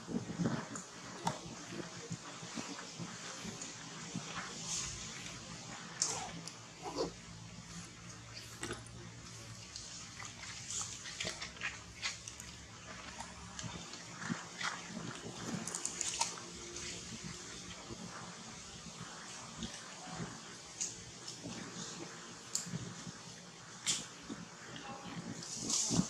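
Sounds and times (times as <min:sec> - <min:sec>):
small clicks and rustles: 0:00.0 - 0:26.0.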